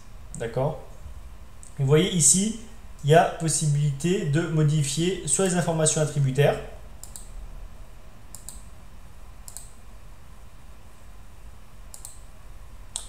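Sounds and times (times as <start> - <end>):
faint low hum: 0.0 - 13.0.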